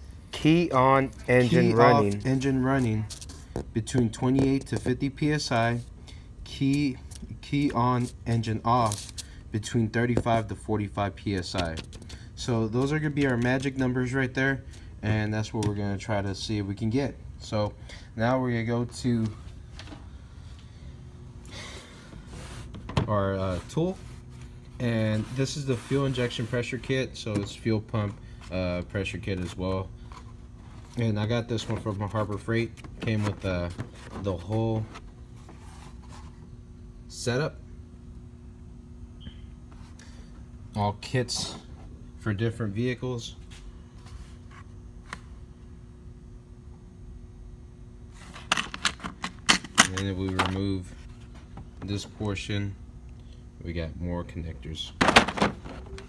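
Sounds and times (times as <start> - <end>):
low steady hum: 0.0 - 56.0.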